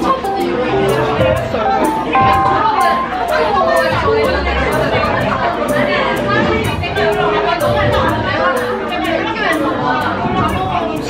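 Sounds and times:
background music with steady beat: 0.0s - 11.0s
chatter: 0.0s - 11.0s
woman talking: 2.2s - 10.9s.

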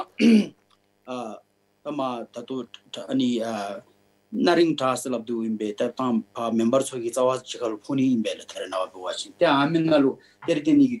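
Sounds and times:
man speaking: 1.1s - 11.0s.

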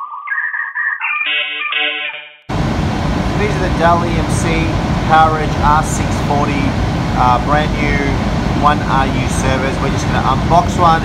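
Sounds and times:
electronic logo jingle: 0.0s - 2.5s
loud steady rushing noise: 2.5s - 11.0s.

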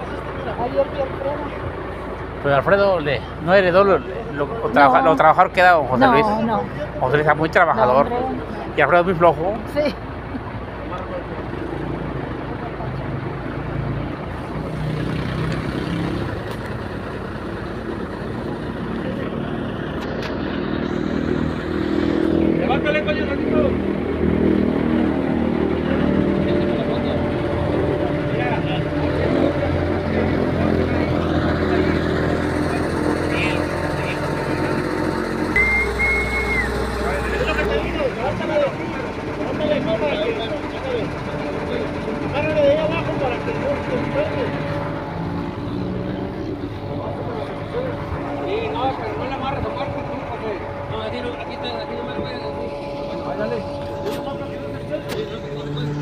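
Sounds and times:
men talking: 0.0s - 13.3s, 17.0s - 56.0s
vehicle engine running: 0.0s - 56.0s.

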